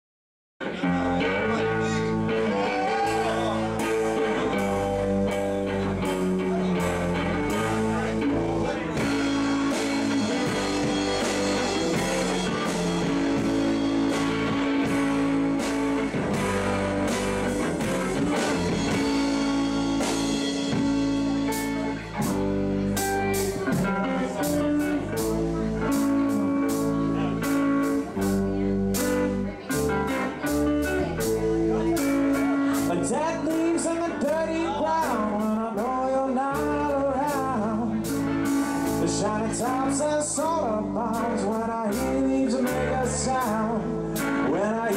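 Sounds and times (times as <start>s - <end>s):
bass guitar: 0.6s - 44.9s
electric guitar: 0.6s - 44.9s
drum kit with cymbal hits: 0.7s - 44.9s.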